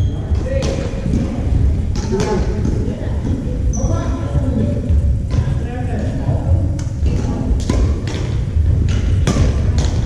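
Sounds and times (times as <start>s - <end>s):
steady low rumble: 0.0s - 10.0s
rackets striking shuttlecocks: 6.7s - 10.0s.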